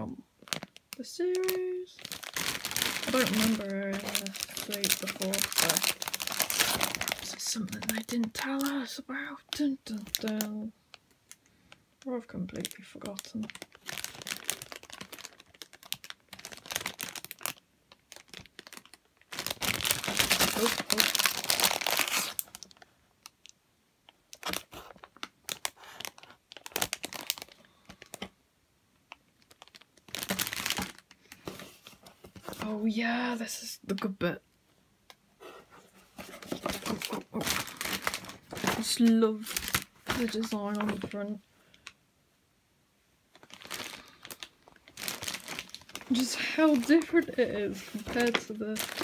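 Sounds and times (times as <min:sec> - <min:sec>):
plastic bags crinkling: 0:00.4 - 0:11.4, 0:12.0 - 0:23.3, 0:24.3 - 0:28.3, 0:29.1 - 0:32.8, 0:36.0 - 0:42.0, 0:43.3 - 0:49.0
paper pages rustling: 0:35.4 - 0:41.3, 0:44.9 - 0:49.0.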